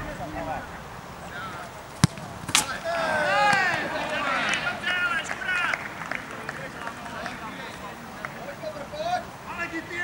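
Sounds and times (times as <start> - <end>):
footballers shouting outdoors: 0.0 - 10.0.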